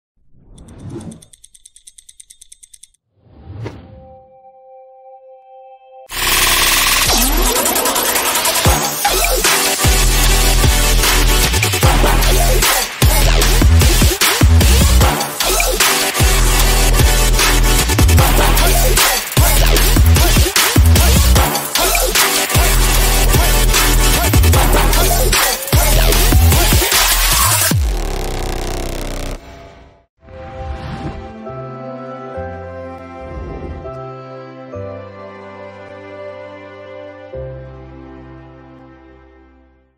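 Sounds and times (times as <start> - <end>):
rapid stopwatch ticking: 0.5 - 3.0
whoosh: 29.4 - 31.4.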